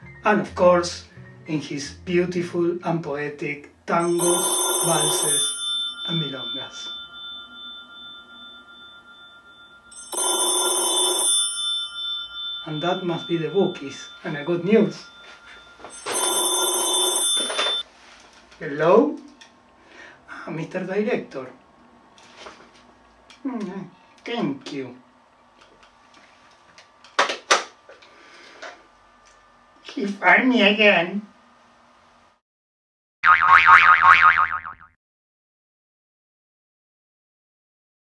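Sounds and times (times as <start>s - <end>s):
telephone bell ringing: 4.0s - 17.9s
cartoon boing twang: 33.2s - 34.9s.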